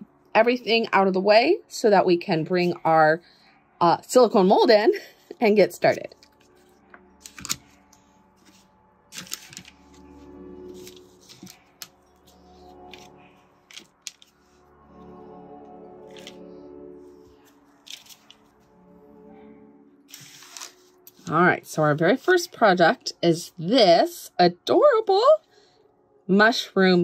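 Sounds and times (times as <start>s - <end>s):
soft background music: 0.0s - 27.0s.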